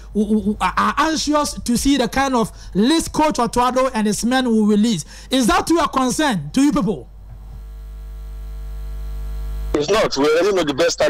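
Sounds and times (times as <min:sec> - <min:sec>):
electrical hum: 0:00.0 - 0:10.2.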